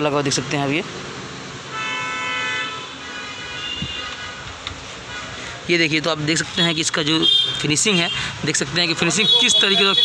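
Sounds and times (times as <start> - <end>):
vehicle horn honking: 1.7 - 4.4, 6.6 - 8.2, 9.2 - 10.0.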